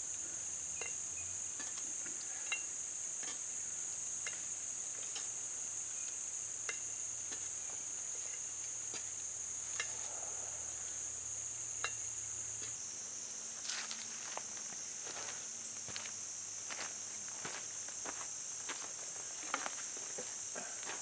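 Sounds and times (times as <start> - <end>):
insects chirring: 0.0 - 21.0.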